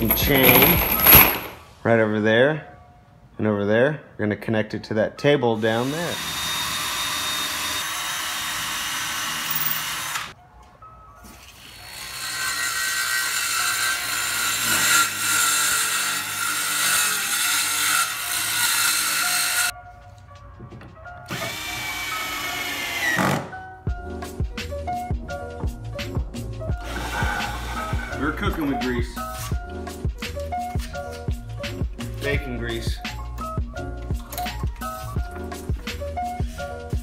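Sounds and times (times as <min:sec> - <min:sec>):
background music: 0:00.0 - 0:07.9, 0:08.8 - 0:37.0
circular saw cutting wood: 0:05.6 - 0:10.4, 0:11.5 - 0:19.7, 0:21.3 - 0:23.6, 0:26.8 - 0:29.5
cordless drill driving screws: 0:05.7 - 0:10.4, 0:21.2 - 0:23.6, 0:26.8 - 0:28.6.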